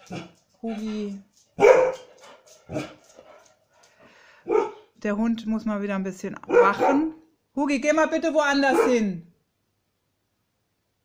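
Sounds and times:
dog barking: 1.6 - 3.0, 4.4 - 4.9, 6.4 - 7.2, 8.6 - 9.1.

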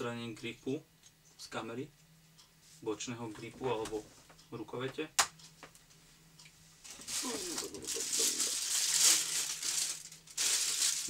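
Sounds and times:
plastic packaging crinkling: 6.9 - 11.0.

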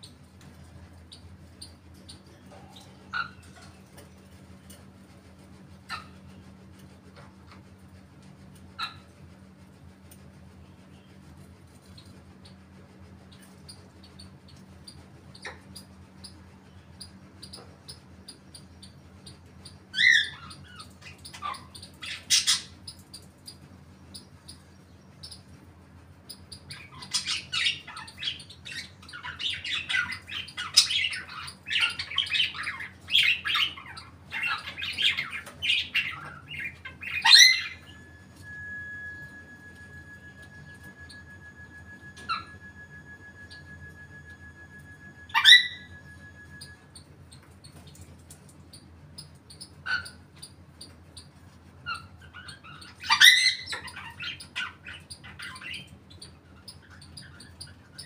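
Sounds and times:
parrots squawking: 2.7 - 3.7, 20.0 - 22.8, 26.7 - 38.6, 40.9 - 46.8, 49.6 - 50.6, 51.8 - 55.9
rapid chattering calls: 26.2 - 38.0, 45.2 - 58.0.

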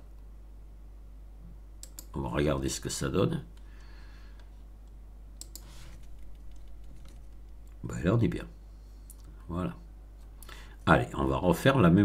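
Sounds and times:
steady low hum: 0.0 - 12.0
mouse and keyboard clicks: 1.8 - 2.1, 5.4 - 7.8.

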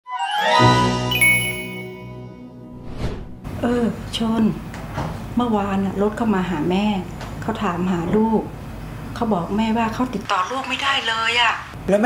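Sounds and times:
bright ding: 1.1 - 2.3
logo jingle with chimes: 1.1 - 2.4.

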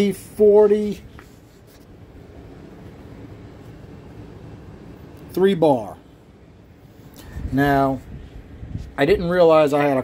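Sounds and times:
low room noise rumble: 0.0 - 10.0.

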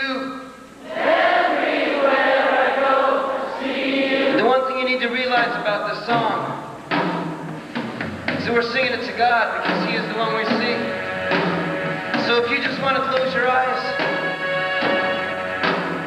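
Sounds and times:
sustained instrumental backing: 0.7 - 16.0.

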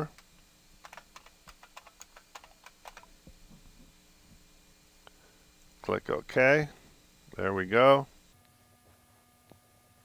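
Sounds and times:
computer keyboard key clicks: 0.8 - 3.1.

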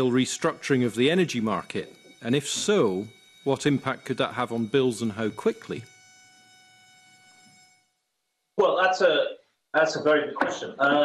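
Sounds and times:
thin electronic whine: 0.0 - 11.0.

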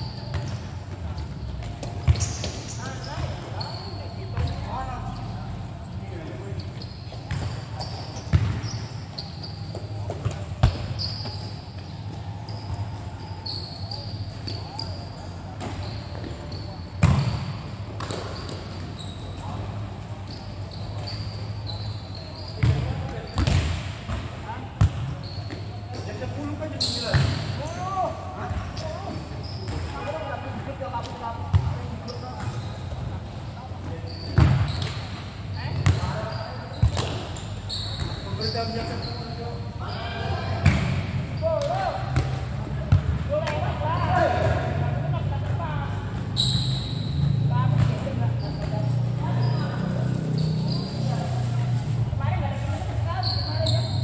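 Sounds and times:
ball kicked and bouncing: 9.7 - 11.0, 17.0 - 18.6, 22.6 - 25.7.

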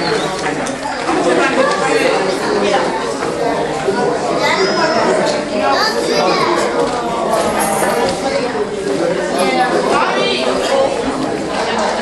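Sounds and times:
children's voices: 0.0 - 12.0
crowd chatter: 0.0 - 12.0.

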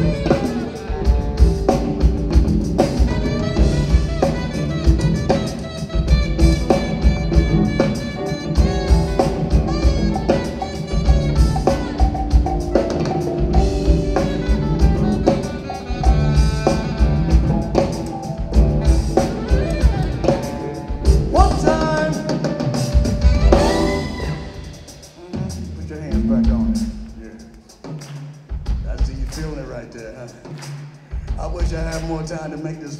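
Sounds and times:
keyboards: 0.0 - 25.2
saxophone: 0.0 - 27.9
drum kit: 0.0 - 32.9
electric bass: 8.6 - 21.8.

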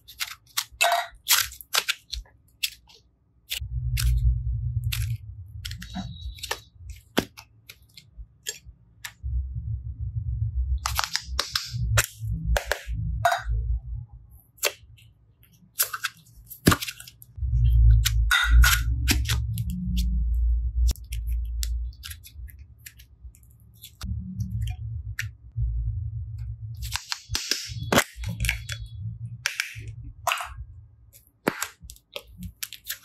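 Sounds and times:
rubbing and handling noise: 0.0 - 9.2, 10.8 - 13.6, 14.4 - 25.4, 26.4 - 33.0
low handling rumble: 3.6 - 7.0, 9.2 - 14.3, 17.3 - 22.6, 24.0 - 26.9, 28.2 - 31.0.

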